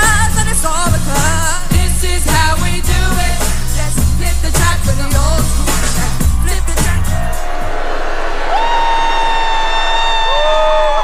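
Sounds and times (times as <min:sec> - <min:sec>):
pop backing track: 0:00.0 - 0:07.7
crowd cheering: 0:06.2 - 0:11.0.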